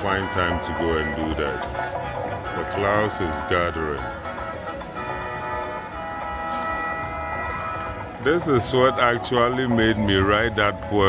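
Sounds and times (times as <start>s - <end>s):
music over loudspeaker: 0.0s - 11.0s.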